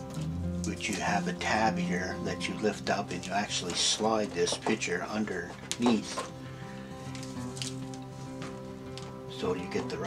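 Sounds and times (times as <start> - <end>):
background music sustained notes: 0.0 - 10.0
paper rustling: 3.1 - 6.4, 7.0 - 9.2.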